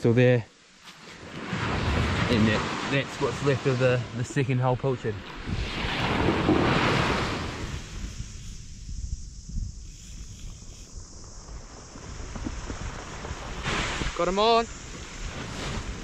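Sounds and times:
waves breaking on beach: 0.9s - 8.4s, 12.2s - 16.0s
wind buffeting microphone: 1.2s - 16.0s.

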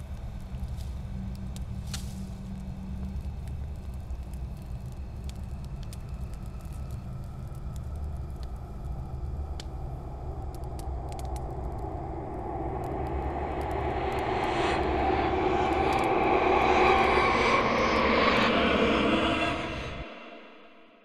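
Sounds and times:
low rumble: 0.2s - 21.0s
broad roaring noise: 10.0s - 21.0s.

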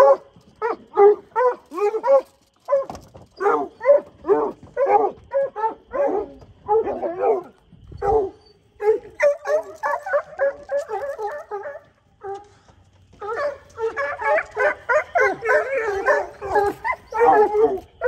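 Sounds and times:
hounds barking and baying: 0.0s - 18.0s.

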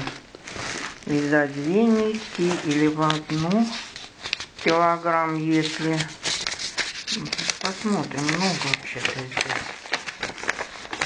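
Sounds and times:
plastic packaging crinkling: 0.0s - 11.0s
woman's voice: 1.1s - 3.9s, 4.6s - 6.2s, 7.1s - 9.7s.

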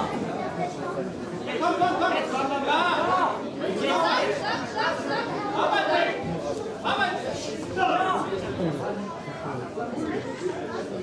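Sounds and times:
crowd chatter in large hall: 0.0s - 11.0s.

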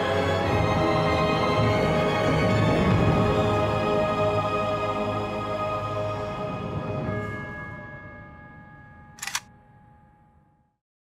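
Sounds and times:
horror score held notes: 0.0s - 8.7s.

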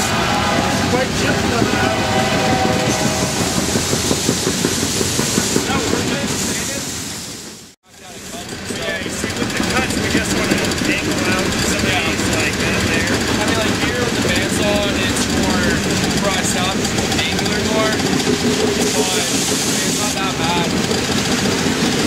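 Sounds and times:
freight train rumbling past: 0.0s - 22.0s
rail cars clattering: 0.0s - 22.0s.

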